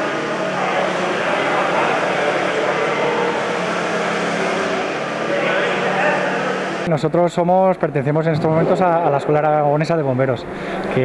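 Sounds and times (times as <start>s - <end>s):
motor humming: 0.0s - 6.9s
murmur of voices: 0.0s - 11.0s.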